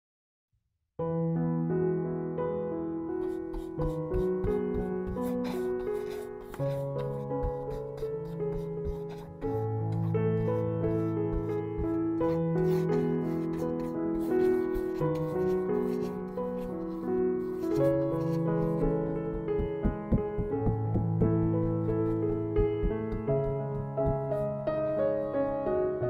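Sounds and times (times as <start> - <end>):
soft piano music: 1.0 - 26.0
paintbrush rubbing on canvas: 3.2 - 24.6.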